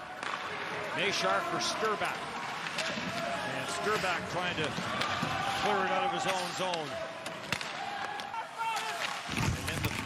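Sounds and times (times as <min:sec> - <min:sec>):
hockey stick striking puck: 0:00.1 - 0:10.0.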